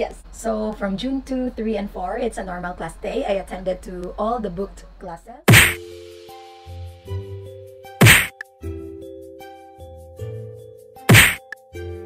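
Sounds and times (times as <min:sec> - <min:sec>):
whack transition sound effect: 0:05.5 - 0:05.8, 0:08.0 - 0:08.4, 0:11.1 - 0:11.4
background music with sustained notes: 0:05.8 - 0:12.0.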